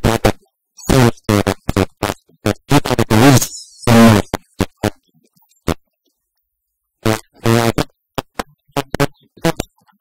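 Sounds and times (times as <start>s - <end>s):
man talking through a microphone: 0.0s - 5.0s.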